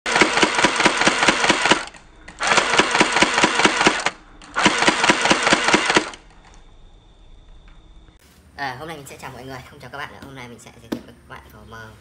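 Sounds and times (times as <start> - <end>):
toy blaster firing rapidly: 0.1 - 6.2.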